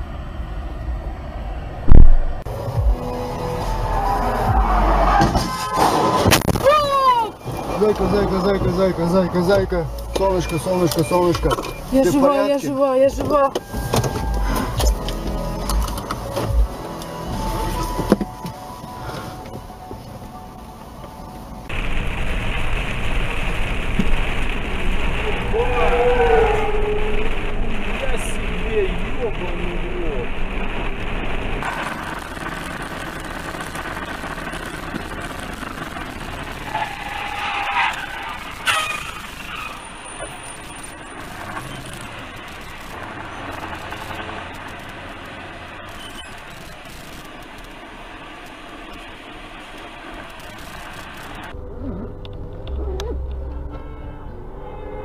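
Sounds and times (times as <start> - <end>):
vehicle engine and road noise: 0.0 - 55.0.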